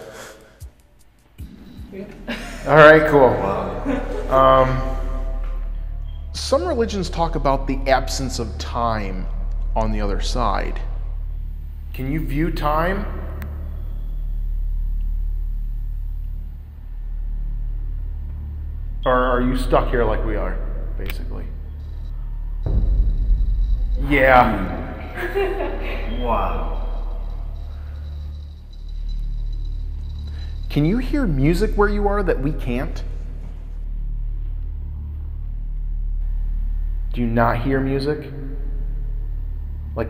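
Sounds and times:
low rumbling drone: 1.4 - 40.0.

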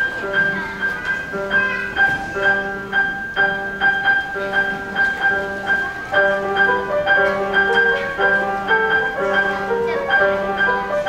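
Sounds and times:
grand piano played four hands: 0.0 - 11.0.

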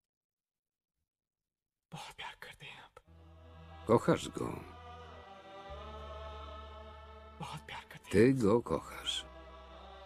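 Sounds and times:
person whispering: 1.9 - 3.1, 7.4 - 9.2.

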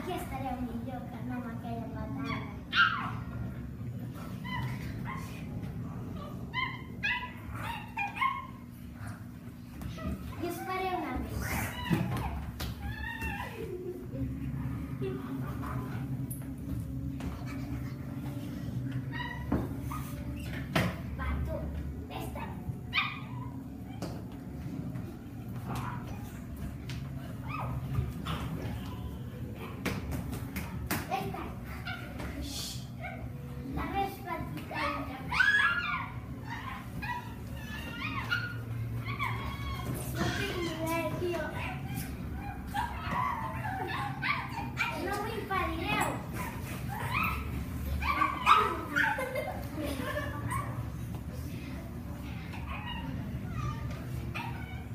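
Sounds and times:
steady low hum: 0.0 - 54.9
children yelping like puppies: 6.2 - 8.6, 10.0 - 14.0, 34.8 - 51.0, 52.3 - 54.9.

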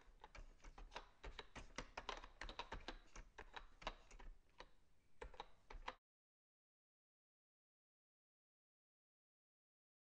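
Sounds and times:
rapid typing on keys: 0.0 - 6.0.

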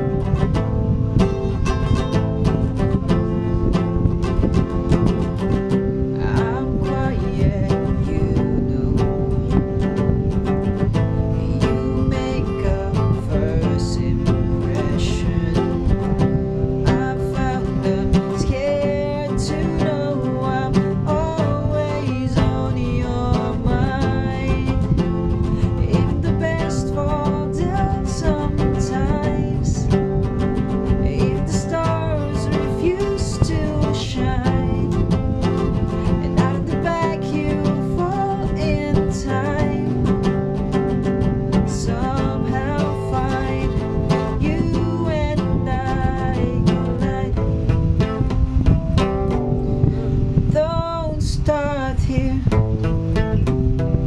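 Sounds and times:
acoustic guitar chords: 0.0 - 54.0.

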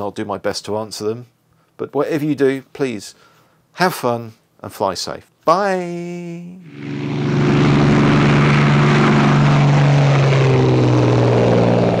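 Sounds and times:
propeller aircraft engine: 6.6 - 12.0.

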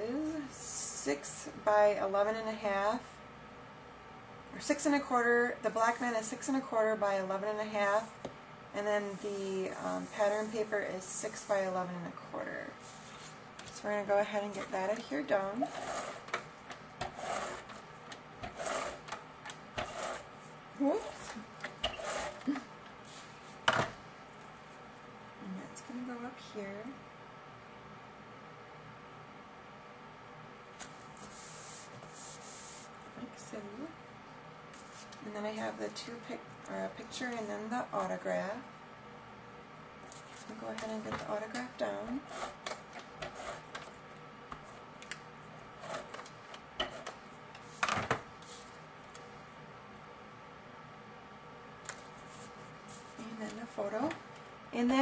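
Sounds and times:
tape runner rasping strokes: 15.6 - 22.5, 42.1 - 43.9, 45.8 - 47.2
tape runner drawn across card: 18.4 - 19.2, 19.8 - 20.3.

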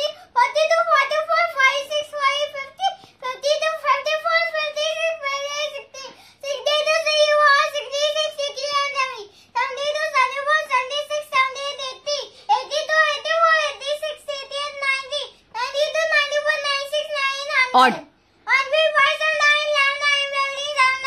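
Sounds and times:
young boy chanting rapidly: 0.0 - 21.0
boy breathing: 6.1 - 6.4.

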